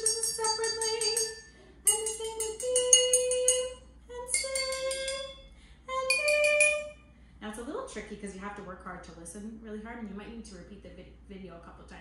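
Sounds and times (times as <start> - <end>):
glasses struck with chopstick ringing: 0.0 - 5.4, 6.1 - 7.0.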